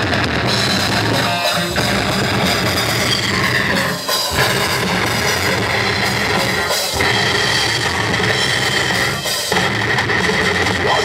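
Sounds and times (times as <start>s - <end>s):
electric bass: 0.0s - 11.0s
live metal band playing: 0.0s - 11.0s.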